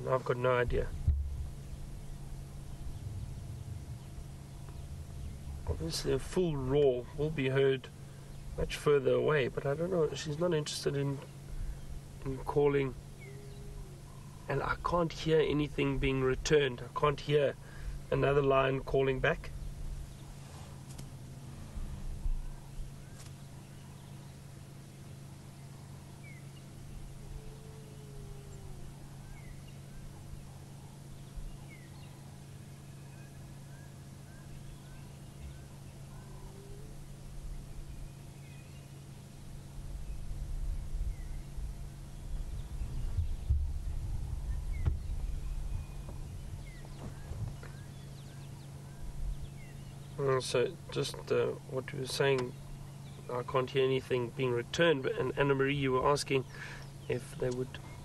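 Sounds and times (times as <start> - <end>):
low rumbling noise: 0.0 - 58.0
steady low hum: 0.0 - 58.0
faint bird chirps: 13.1 - 14.5, 22.2 - 50.3.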